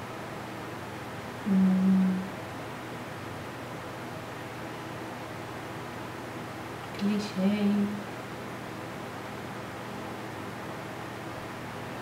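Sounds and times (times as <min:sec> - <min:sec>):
steady low hiss: 0:00.0 - 0:12.0
woman humming: 0:01.4 - 0:02.3.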